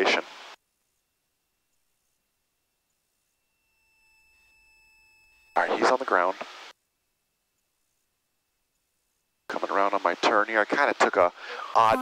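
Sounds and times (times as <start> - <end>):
faint high electronic tone: 0.8 - 12.0.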